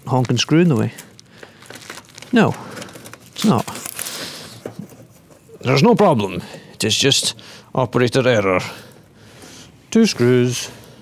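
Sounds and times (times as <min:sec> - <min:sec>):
hands rustling with wiring: 0:00.0 - 0:06.5.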